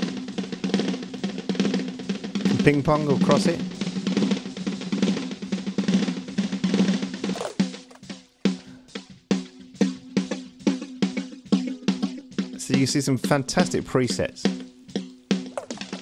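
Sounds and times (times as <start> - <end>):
snare drum hits with tape echo: 15.3 - 16.0.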